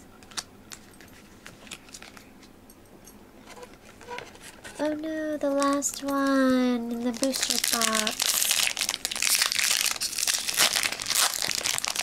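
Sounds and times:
foil wrapper crinkling: 3.6 - 12.0.

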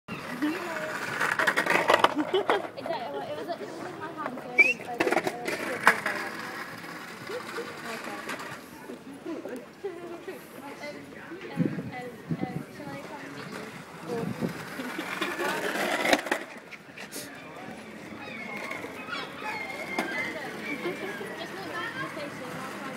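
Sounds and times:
people talking: 0.1 - 16.4, 17.0 - 22.9
skateboard wheels rolling on tarmac: 0.1 - 22.9.

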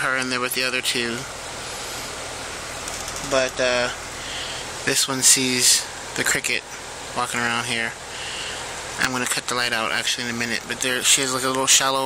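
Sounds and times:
person speaking: 0.0 - 1.3, 3.1 - 8.3, 9.0 - 12.0
steady background hiss: 0.0 - 12.0.

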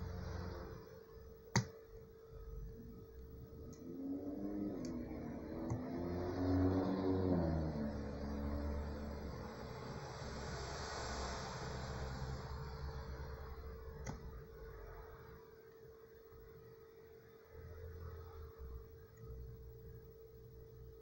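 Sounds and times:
faint steady hum: 0.0 - 21.0
engine passing by: 3.8 - 14.0
steady rushing noise: 3.8 - 15.1.

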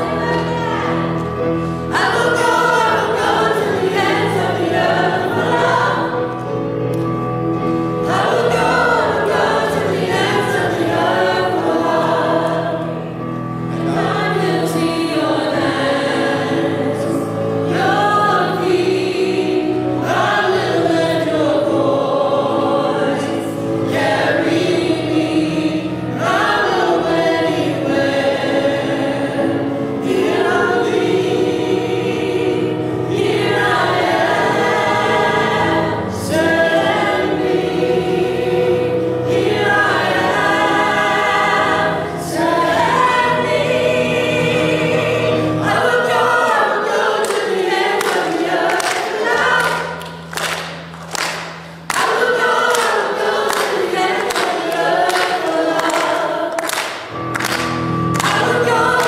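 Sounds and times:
choir singing: 0.0 - 50.6, 51.8 - 59.0
keyboard: 0.0 - 59.0.

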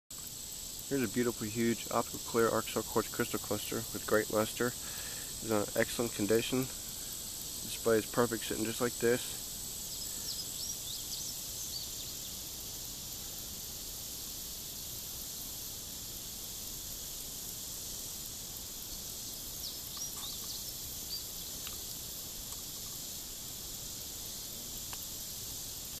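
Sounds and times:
high insect buzz: 0.1 - 26.0
bird chirps: 9.9 - 12.3, 19.6 - 21.4.

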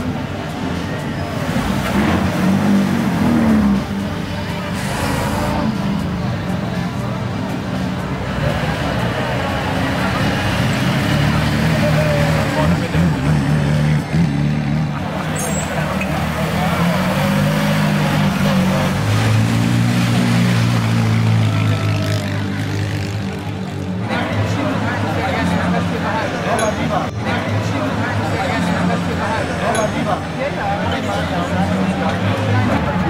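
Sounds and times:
crowd chatter: 0.0 - 33.0.

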